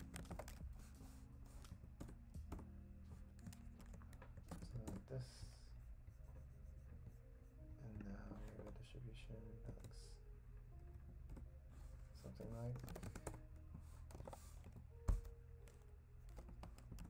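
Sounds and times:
typing on keyboard: 0.0s - 5.5s, 7.9s - 10.2s, 12.2s - 17.0s.

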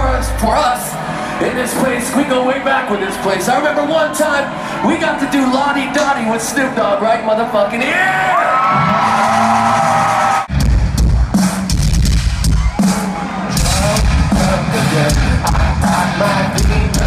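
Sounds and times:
metal band playing loud: 0.0s - 8.2s, 8.8s - 17.0s
heavy bass: 8.9s - 17.0s
pounding drums: 9.0s - 17.0s.

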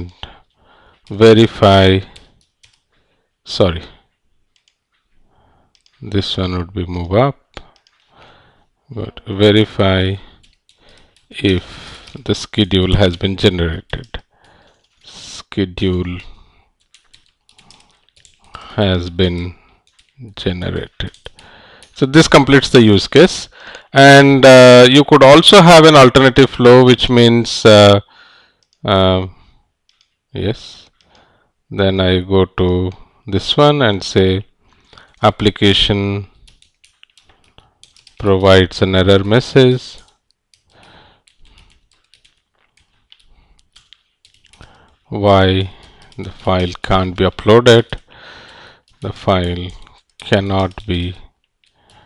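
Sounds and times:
typing on computer keyboard: 2.1s - 2.9s, 4.5s - 4.8s, 5.7s - 6.1s, 7.7s - 8.1s, 10.4s - 11.4s, 13.8s - 15.1s, 16.8s - 18.7s, 19.3s - 22.0s, 29.9s - 30.2s, 36.3s - 38.4s, 40.0s - 52.0s.

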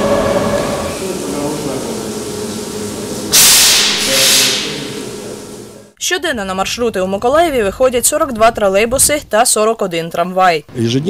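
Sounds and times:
loud air hiss: 0.0s - 5.9s
low machinery hum: 0.0s - 10.2s.

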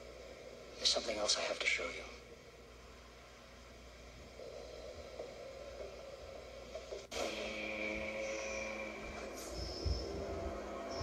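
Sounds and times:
held drone of steady tones: 0.0s - 11.0s
orchestral score through laptop speaker: 6.6s - 11.0s.

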